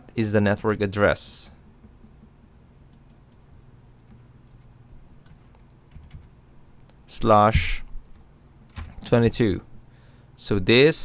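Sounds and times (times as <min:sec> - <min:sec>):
low steady hum: 0:00.0 - 0:11.0
computer keyboard keystrokes: 0:02.9 - 0:03.3, 0:04.0 - 0:06.3, 0:08.1 - 0:09.2.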